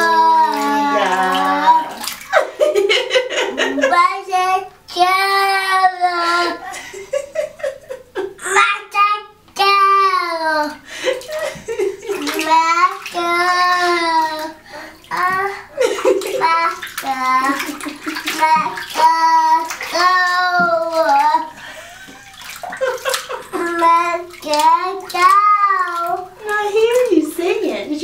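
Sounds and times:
toddler singing: 0.0 - 2.0, 3.9 - 6.7, 8.4 - 10.8, 12.4 - 15.7, 18.4 - 21.6, 23.6 - 26.4
water splashing in a bathtub: 0.0 - 28.0.

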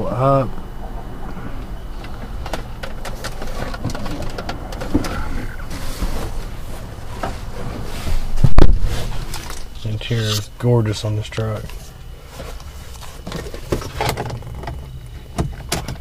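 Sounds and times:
low rumble: 0.0 - 10.0
loud thump: 8.4 - 9.1.

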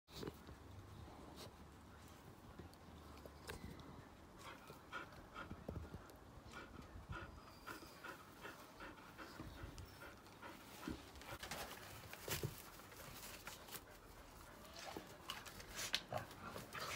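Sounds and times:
dog panting: 4.3 - 11.7.

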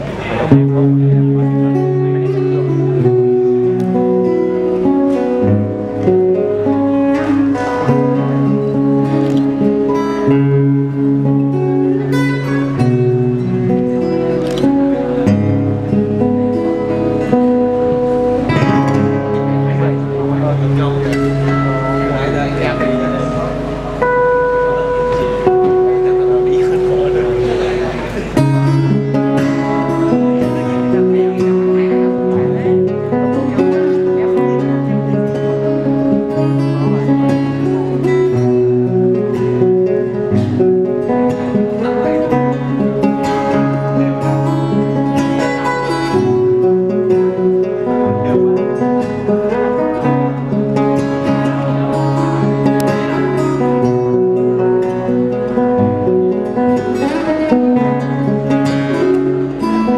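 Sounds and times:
acoustic guitar duet: 0.0 - 59.9.

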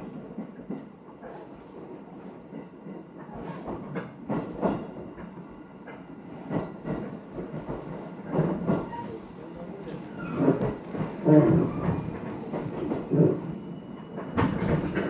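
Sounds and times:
train car rumble: 0.0 - 15.0.

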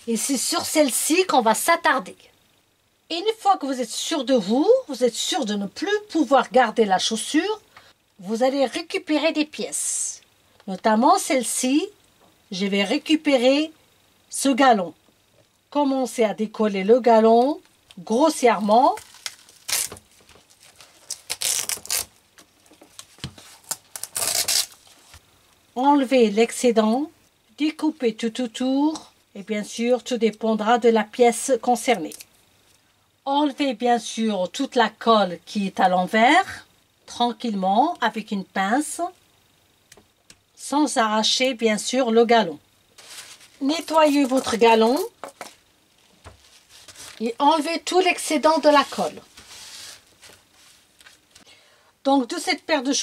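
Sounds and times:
tissue rubbing: 19.0 - 22.1, 23.0 - 25.2, 43.0 - 44.6, 45.9 - 47.2, 48.6 - 51.4.

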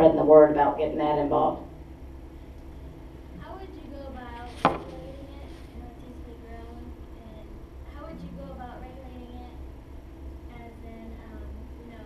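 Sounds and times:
sharp knock: 4.6 - 4.9.

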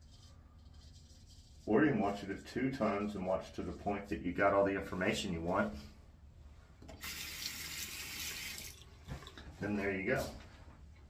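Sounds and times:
tap water running: 6.8 - 9.4.

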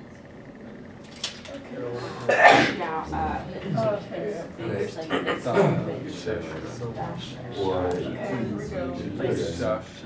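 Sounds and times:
low voices: 1.4 - 10.0
loud sneeze: 2.3 - 2.8.

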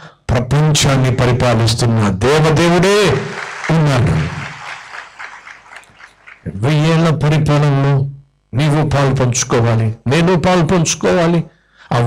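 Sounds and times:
amplified voice of man preaching: 0.0 - 4.3, 6.5 - 12.0
faint scattered applause: 2.7 - 7.0.

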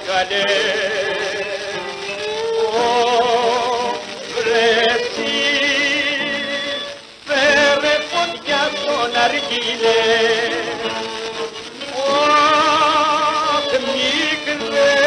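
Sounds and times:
old gramophone recording of ornamented melody: 0.0 - 15.0.

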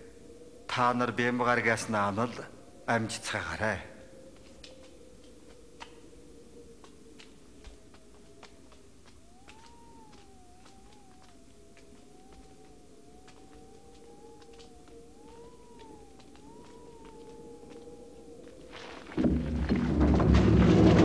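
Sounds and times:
faint film score: 0.0 - 21.0
faint scattered clicks: 2.6 - 18.7.

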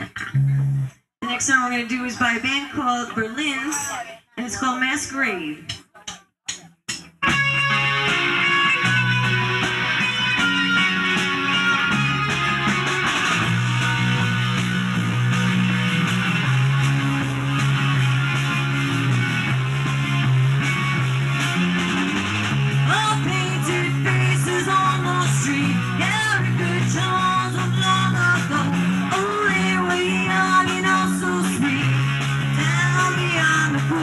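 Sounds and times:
moving bass line: 0.0 - 1.0, 7.2 - 34.0
live rock band playing: 7.2 - 34.0.

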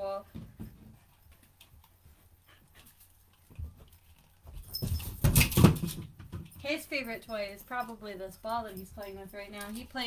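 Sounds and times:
knocks and scrabbling: 2.7 - 7.0.

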